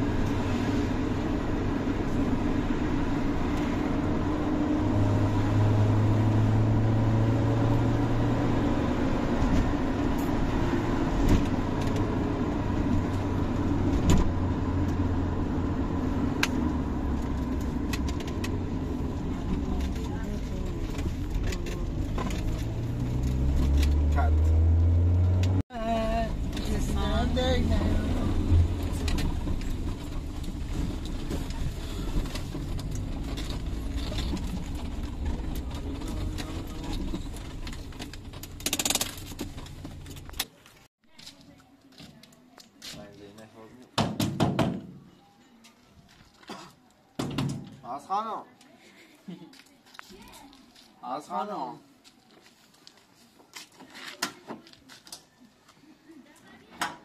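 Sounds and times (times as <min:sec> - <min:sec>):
car engine: 0:00.0 - 0:40.9
road noise: 0:00.0 - 0:57.0
car rattles and knocks: 0:28.7 - 0:40.5, 0:44.0 - 0:45.0, 0:47.2 - 0:47.8.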